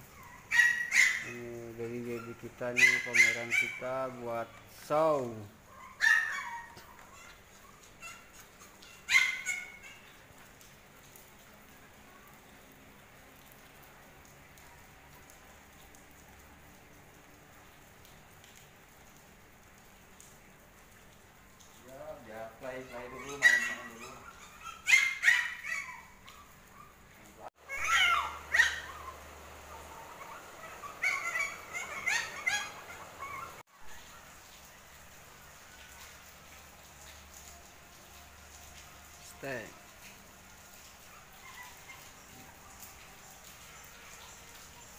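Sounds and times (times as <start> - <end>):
puppies yipping and barking: 0.0 - 4.9, 5.6 - 10.3, 22.6 - 34.4, 40.8 - 44.9.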